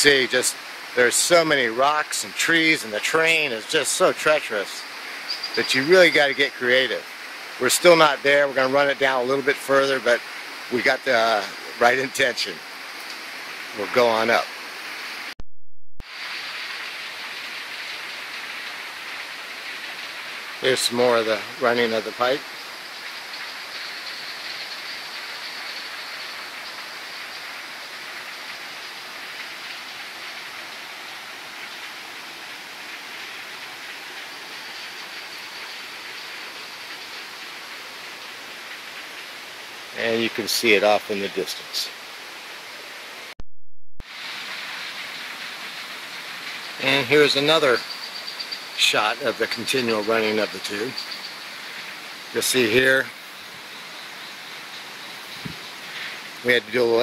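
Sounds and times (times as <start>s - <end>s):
steady hiss of water: 0.0s - 15.4s, 16.0s - 43.4s, 44.0s - 57.0s.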